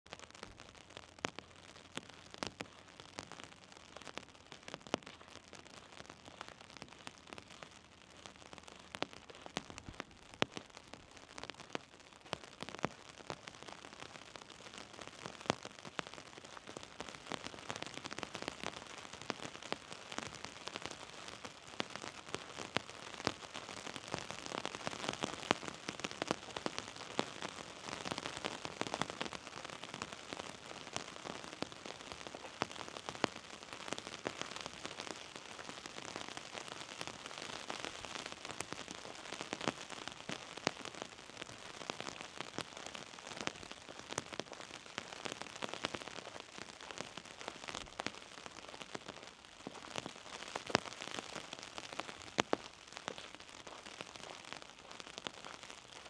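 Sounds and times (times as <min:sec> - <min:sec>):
light rain pattering: 0:00.0 - 0:56.0
raindrops ticking sharply: 0:00.1 - 0:56.0.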